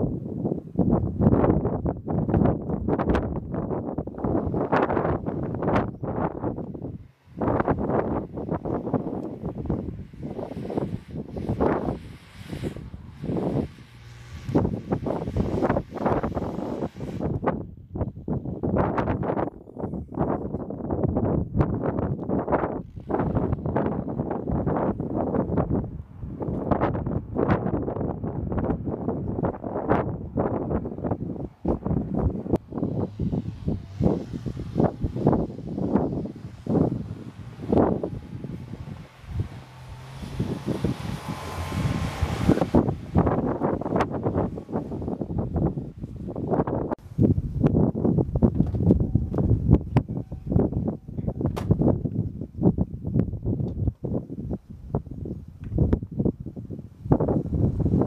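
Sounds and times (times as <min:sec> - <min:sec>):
wind buffeting microphone: 0:00.0 - 0:58.0
faint car engine: 0:00.2 - 0:47.0
tyres churning through snow: 0:03.9 - 0:19.4, 0:22.3 - 0:27.8, 0:28.8 - 0:48.5.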